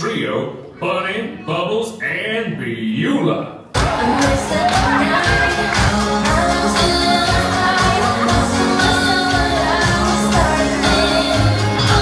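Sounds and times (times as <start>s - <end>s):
band playing with drum beat: 3.8s - 12.0s.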